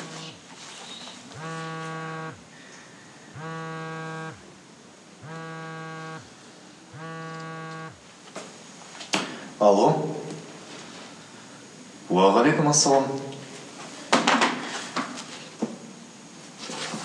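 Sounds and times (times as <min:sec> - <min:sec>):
mobile phone vibrating: 0:00.0 - 0:00.4, 0:01.3 - 0:02.6, 0:03.3 - 0:04.5, 0:05.2 - 0:08.0.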